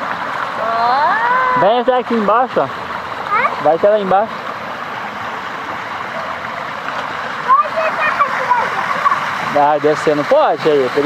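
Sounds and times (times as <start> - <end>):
water rushing through channel: 0.0 - 11.0.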